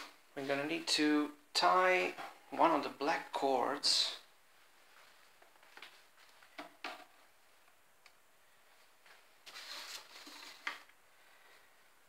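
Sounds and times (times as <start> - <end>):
cord rustling: 8.6 - 11.0.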